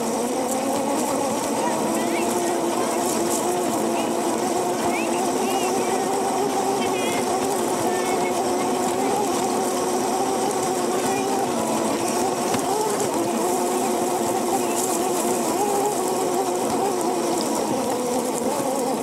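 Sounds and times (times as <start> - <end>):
electric go-kart motor whining: 0.0 - 19.0.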